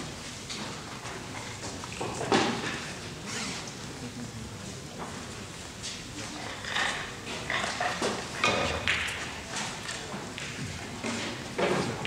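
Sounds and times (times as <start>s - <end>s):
background chatter: 2.6s - 7.6s.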